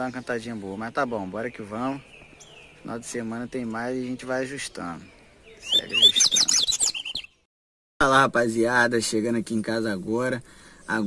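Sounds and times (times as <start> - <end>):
bird singing high whistles: 5.6 - 7.4.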